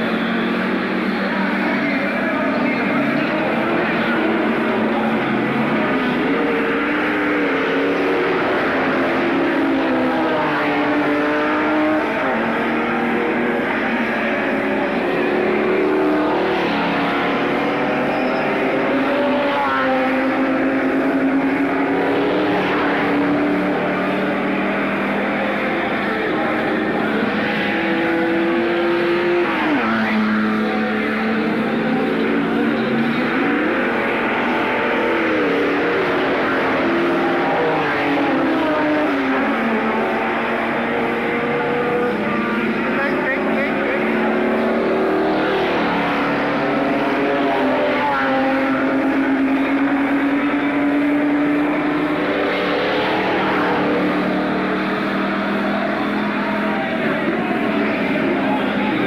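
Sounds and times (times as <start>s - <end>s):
race car engines revving: 0.0s - 59.0s.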